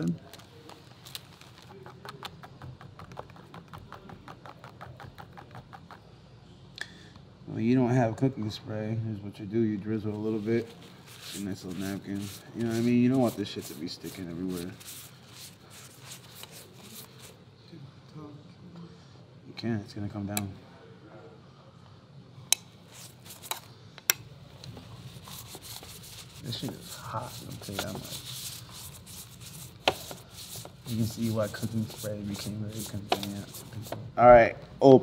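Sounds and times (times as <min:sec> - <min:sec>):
plastic spoon stirring batter: 0:00.2 - 0:06.1, 0:10.5 - 0:17.4, 0:22.9 - 0:23.7, 0:24.6 - 0:34.1
napkin wiping waffle iron: 0:10.3 - 0:17.3, 0:25.0 - 0:34.0.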